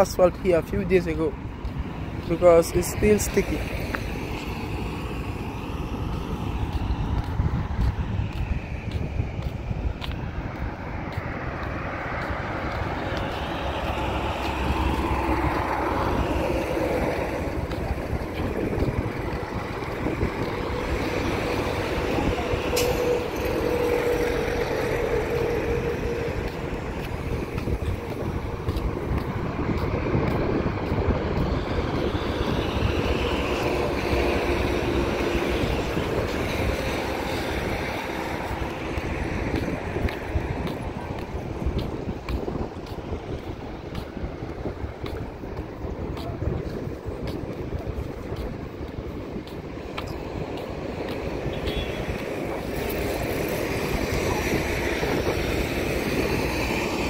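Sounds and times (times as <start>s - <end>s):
distant traffic: 0.0s - 57.0s
wind rumble on microphone: 0.0s - 57.0s.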